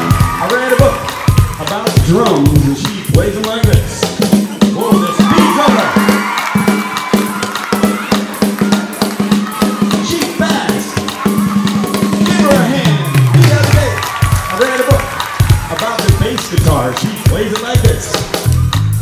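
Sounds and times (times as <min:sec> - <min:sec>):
rock band music: 0:00.0 - 0:19.0.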